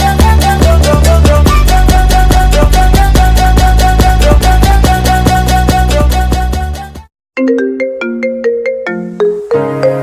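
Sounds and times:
phone ringtone melody: 7.4s - 10.0s.

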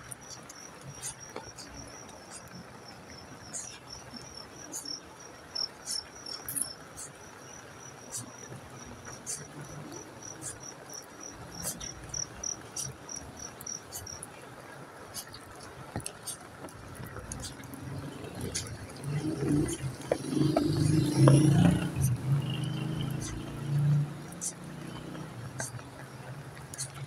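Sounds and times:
cricket chirping: 0.0s - 14.4s, 15.1s - 27.0s
rain hiss: 0.0s - 27.0s
sharp ticks: 8.1s - 14.3s, 15.2s - 27.0s.

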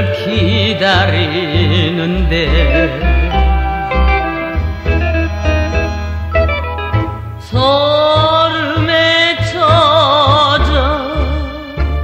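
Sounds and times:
band with strong bass line: 0.0s - 12.0s.

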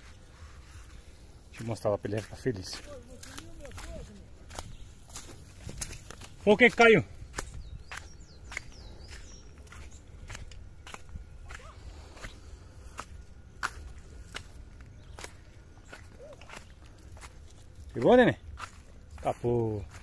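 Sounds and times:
footsteps on dirt and stones: 0.0s - 20.0s.

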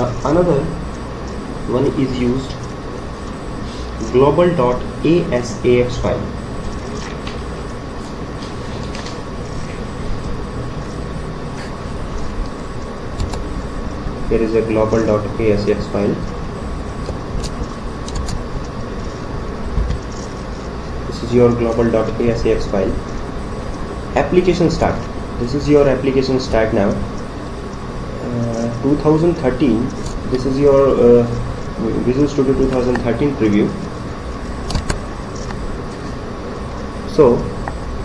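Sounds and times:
computer mouse clicks: 13.2s - 13.5s, 17.0s - 18.7s, 34.7s - 35.6s.

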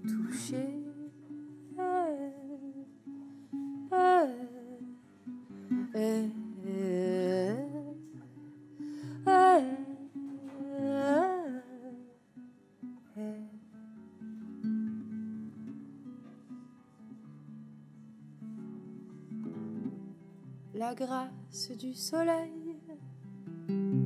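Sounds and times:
acoustic guitar: 0.0s - 24.0s.

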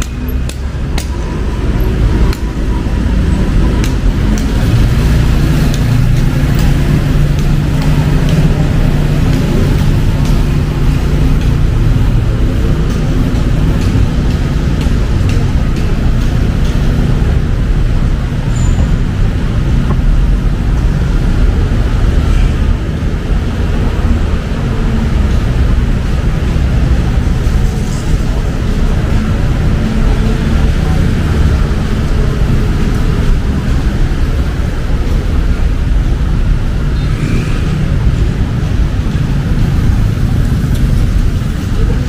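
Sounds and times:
road traffic rumble: 0.0s - 42.0s.

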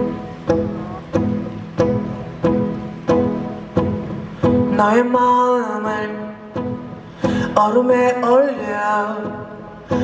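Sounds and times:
fingerstyle acoustic guitar: 0.0s - 10.0s.

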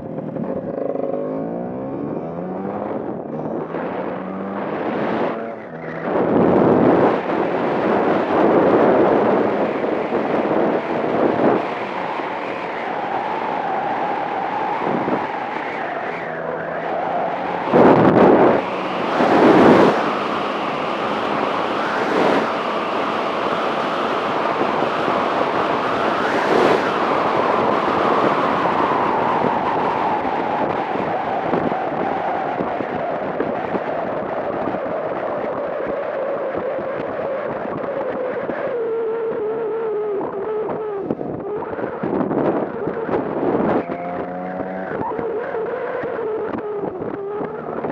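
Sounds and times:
wind on microphone: 1.8s - 47.9s.

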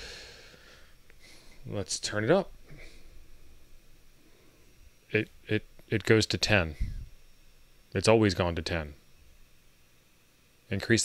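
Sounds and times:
low hum: 0.0s - 10.7s
faint high whine: 0.0s - 11.0s
steady hiss: 0.0s - 11.0s.

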